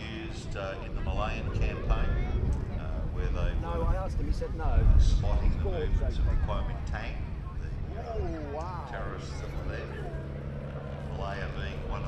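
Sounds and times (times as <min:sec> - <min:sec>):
aircraft piston engine droning: 0:00.0 - 0:12.0
commentator speaking: 0:11.0 - 0:12.0.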